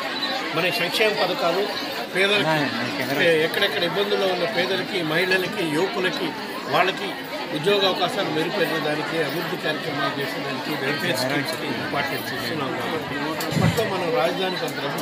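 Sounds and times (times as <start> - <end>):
people chattering: 0.0 - 15.0
man talking: 0.6 - 6.0.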